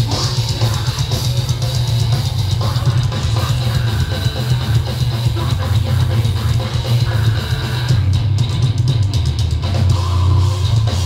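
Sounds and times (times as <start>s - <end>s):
distorted guitars and bass: 0.0s - 11.0s
fast drum hits: 0.0s - 11.0s.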